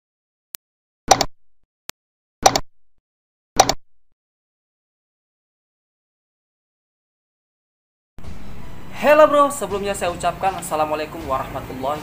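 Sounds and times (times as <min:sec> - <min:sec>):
mouse click sound effects: 0:01.1 - 0:01.3, 0:02.4 - 0:02.7, 0:03.6 - 0:03.8.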